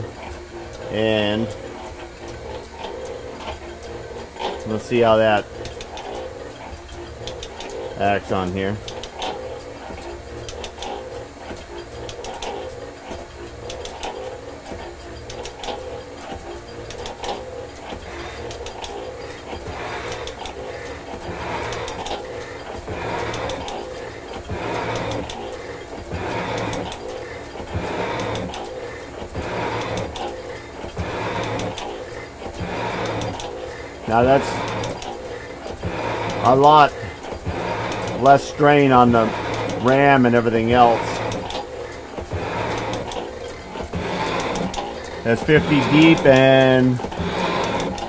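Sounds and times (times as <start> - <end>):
metal shaper running: 0.0 - 48.0
tool bit scraping cast iron: 13.6 - 48.0.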